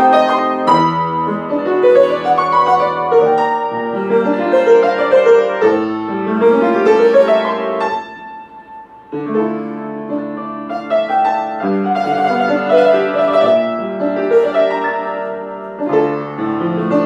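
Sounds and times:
upright piano playing: 0:00.0 - 0:17.0.

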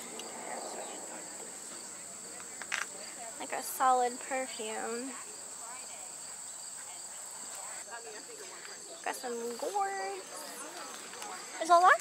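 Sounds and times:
faint voices murmuring: 0:00.0 - 0:12.0
insects chorusing: 0:00.0 - 0:12.0.

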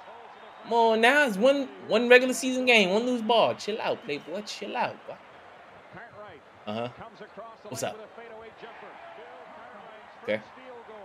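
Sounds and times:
arena crowd noise: 0:00.0 - 0:11.0
announcer talking: 0:00.7 - 0:05.2, 0:06.7 - 0:07.0, 0:07.7 - 0:08.0.

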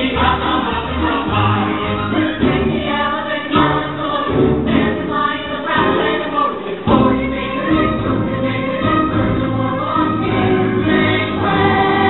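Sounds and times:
backing music: 0:00.0 - 0:12.0
chorus singing: 0:00.0 - 0:12.0.

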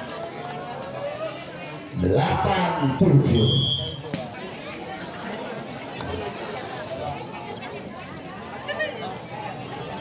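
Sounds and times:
chatter of spectators: 0:00.0 - 0:10.0.

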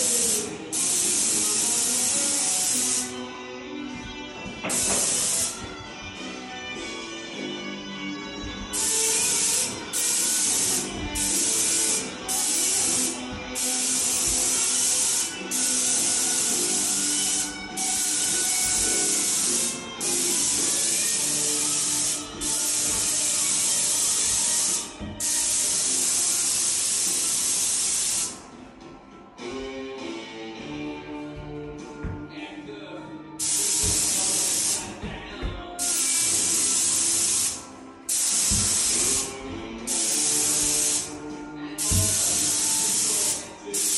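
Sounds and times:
paint spray gun hissing: 0:00.0 - 0:03.2, 0:04.7 - 0:05.6, 0:08.6 - 0:28.4, 0:33.4 - 0:35.0, 0:35.8 - 0:41.1, 0:41.8 - 0:43.9.

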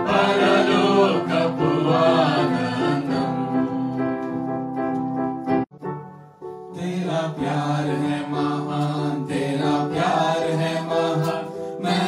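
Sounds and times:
group singing worship song: 0:00.0 - 0:04.5, 0:06.7 - 0:12.0
electronic keyboard: 0:00.0 - 0:12.0.

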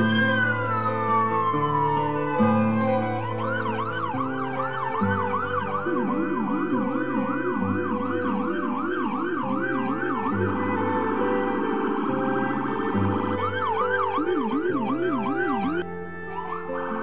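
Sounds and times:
ambulance siren yelping: 0:00.0 - 0:17.0
held musical chords: 0:00.0 - 0:17.0.

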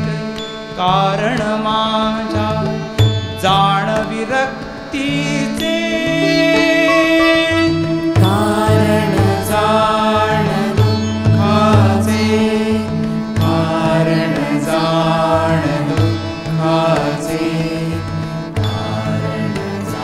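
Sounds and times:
sitar melody: 0:00.0 - 0:20.0
hand drum rhythm: 0:07.3 - 0:20.0
steady drone: 0:07.8 - 0:20.0.

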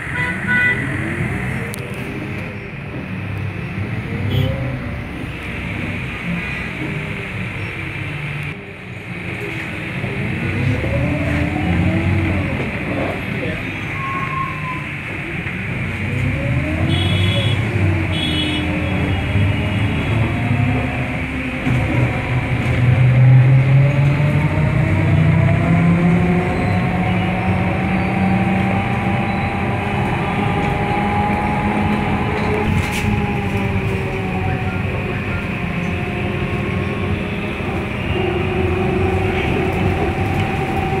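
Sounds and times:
bus engine and road rumble: 0:00.0 - 0:41.0.

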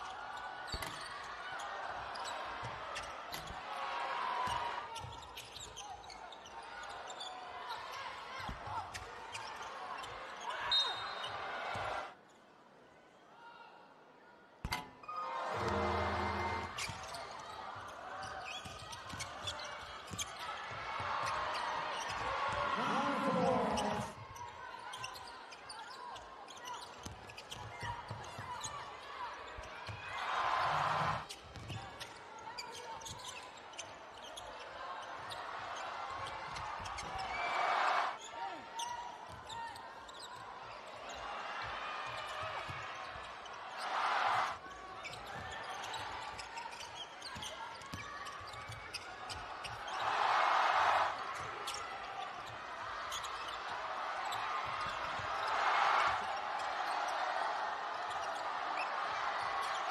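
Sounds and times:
murmur of crowd voices: 0:13.6 - 0:59.9
crowd swells: 0:14.8 - 0:18.0, 0:21.0 - 0:24.2, 0:30.1 - 0:31.3, 0:34.9 - 0:38.2, 0:41.2 - 0:44.6, 0:49.3 - 0:59.9.

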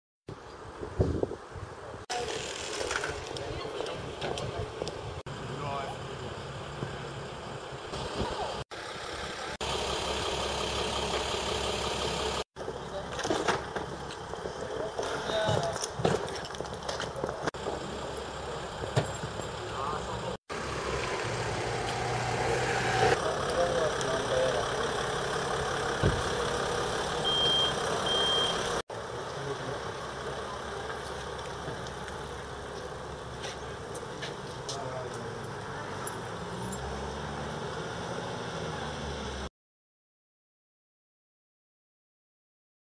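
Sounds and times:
ambulance engine idling: 0:02.2 - 0:15.3, 0:23.2 - 0:35.5
reversing alarm beep: 0:27.2 - 0:28.8.

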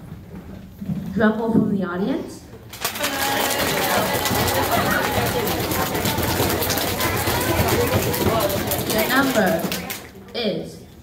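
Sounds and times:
people drumming with hands: 0:02.8 - 0:10.0
voices calling out: 0:02.8 - 0:10.1.

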